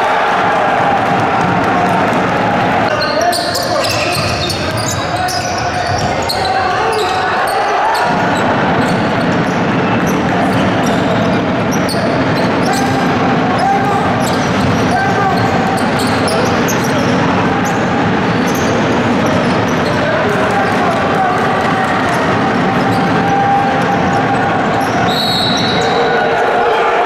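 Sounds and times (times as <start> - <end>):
players and spectators shouting: 0.0 - 27.0.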